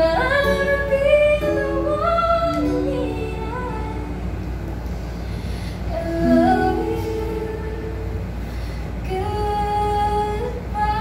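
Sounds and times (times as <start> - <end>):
person singing: 0.0 - 4.3, 5.9 - 8.3
low background rumble: 0.0 - 11.0.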